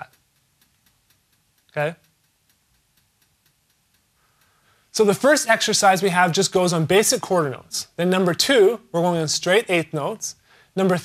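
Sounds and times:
faint light ticks: 0.0s - 5.0s.

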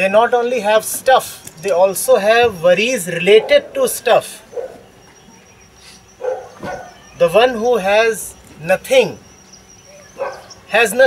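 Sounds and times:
dog barking: 3.3s - 3.9s, 4.5s - 4.9s, 6.2s - 7.0s, 9.9s - 10.6s.

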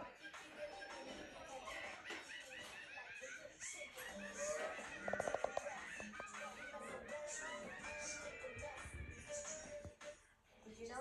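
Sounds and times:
cartoon soundtrack on tv: 0.0s - 11.0s.

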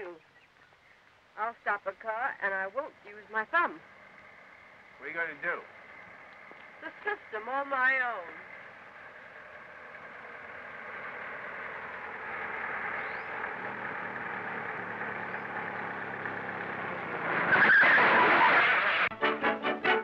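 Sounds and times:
car engine and tyre noise: 2.8s - 20.0s
car braking and skidding: 8.4s - 19.1s.

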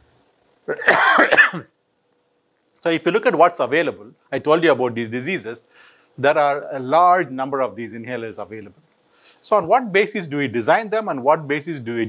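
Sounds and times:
man clearing his throat: 0.7s - 1.7s
man speaking: 2.8s - 5.6s, 6.2s - 8.8s, 9.4s - 12.0s.

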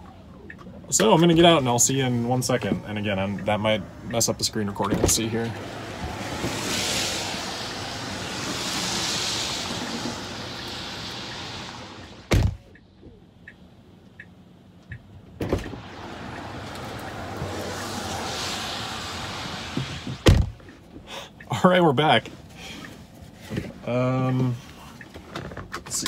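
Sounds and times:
hiss of wet street: 1.4s - 12.4s, 15.6s - 21.6s
car door opening click: 12.3s - 12.7s
car door shutting thunk: 12.3s - 12.7s, 15.4s - 15.9s, 19.7s - 20.6s.

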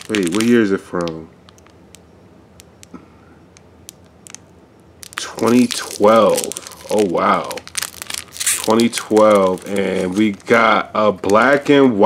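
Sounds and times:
foil wrapper crinkling: 0.0s - 2.0s, 3.9s - 12.0s.

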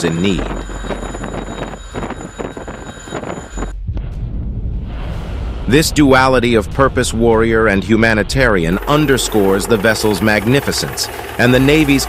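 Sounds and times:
missile launch roar: 3.9s - 7.7s.

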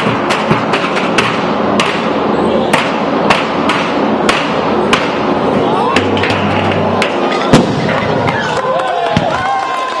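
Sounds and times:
fireworks banging and cracking: 0.0s - 10.0s
crowd voices: 4.0s - 10.0s.

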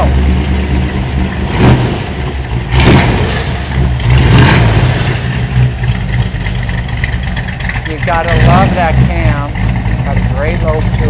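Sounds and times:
car engine revving and idling: 0.0s - 11.0s.

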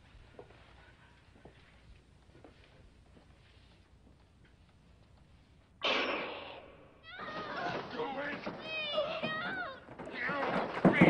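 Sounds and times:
loud crash: 5.8s - 8.5s
girl screaming and crying: 7.0s - 7.9s, 8.5s - 9.9s.

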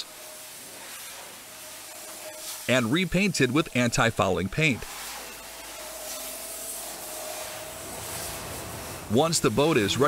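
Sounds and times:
paint spray gun hissing: 0.0s - 9.9s.

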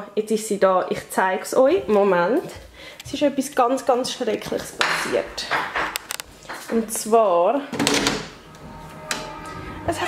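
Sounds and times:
faint music: 6.7s - 10.0s.

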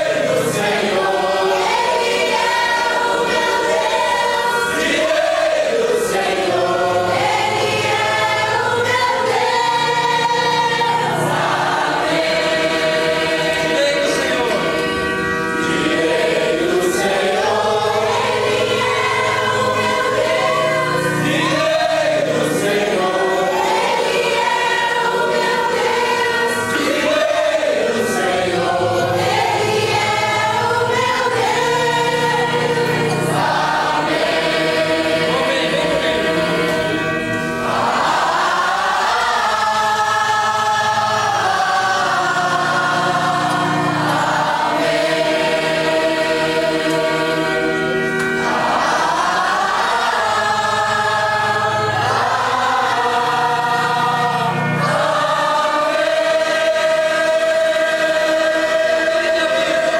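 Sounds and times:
congregation singing: 0.0s - 59.9s.

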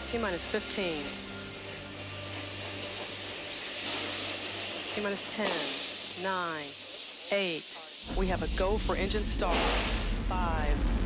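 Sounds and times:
low hum: 0.0s - 11.0s
steady rushing hiss: 0.0s - 11.0s.

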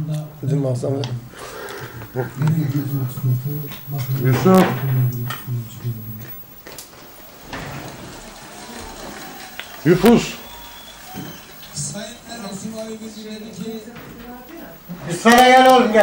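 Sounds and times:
indistinct talking: 0.0s - 16.0s.

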